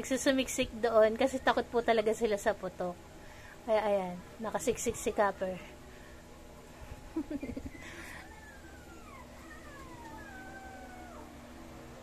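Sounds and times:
dogs howling faintly: 7.4s - 12.0s.

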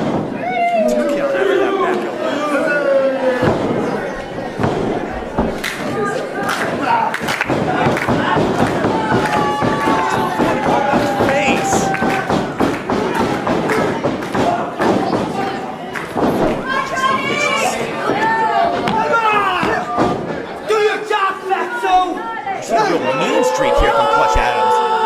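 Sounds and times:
crowd shouting: 0.0s - 25.0s.

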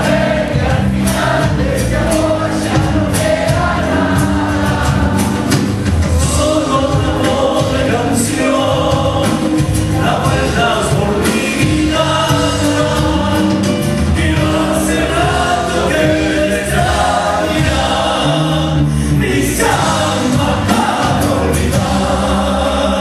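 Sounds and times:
folk band playing: 0.0s - 23.0s
men singing together: 0.0s - 23.0s.

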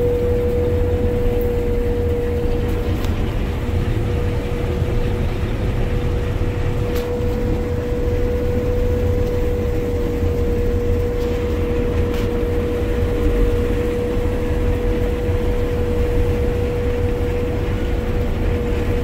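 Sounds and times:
combine harvester engine drone: 0.0s - 19.0s
steady machine whine: 0.0s - 19.0s.

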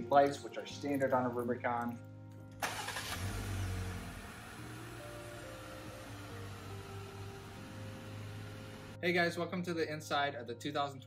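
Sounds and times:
background music: 0.0s - 11.0s
car engine starting and idling: 2.6s - 9.0s.

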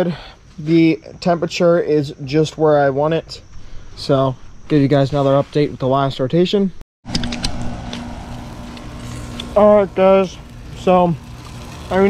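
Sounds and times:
steady mechanical hum: 7.1s - 12.0s.

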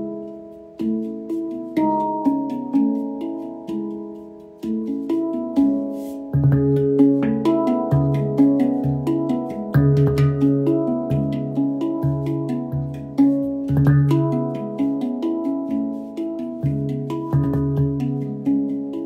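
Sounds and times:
handpan melody: 0.0s - 19.0s.

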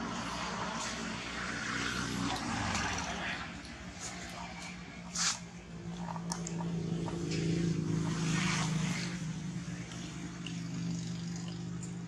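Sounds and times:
motor engine droning: 0.0s - 12.0s.

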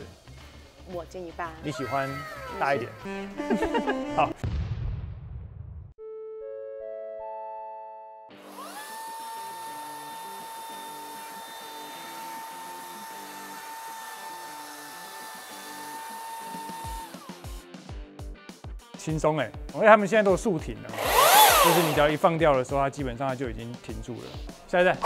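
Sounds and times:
electric chainsaw whining: 8.4s - 17.4s, 20.9s - 22.3s.

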